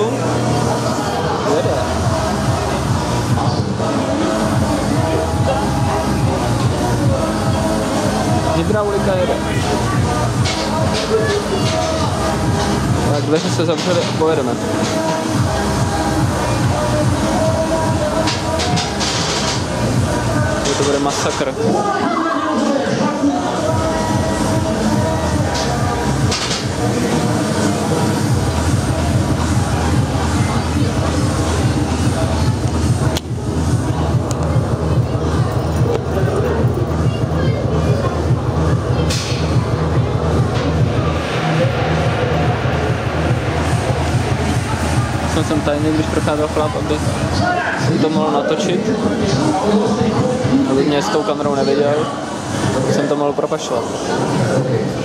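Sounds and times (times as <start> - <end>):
music over loudspeakers: 0.0 - 55.0
roller coaster rumbling on track: 24.4 - 48.2
low rumble: 37.7 - 47.4.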